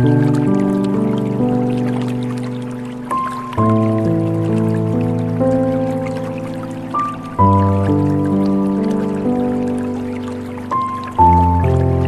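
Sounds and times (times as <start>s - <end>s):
faint trickle of water: 0.0s - 12.0s
slow gentle piano music: 0.0s - 12.0s.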